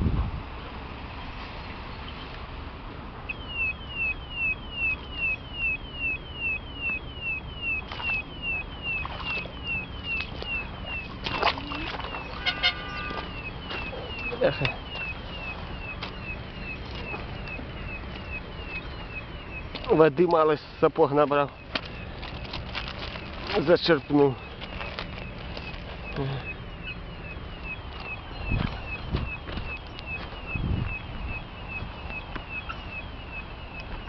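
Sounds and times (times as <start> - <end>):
footsteps on gravel: 10.2 - 18.8, 21.4 - 26.5, 27.9 - 30.9.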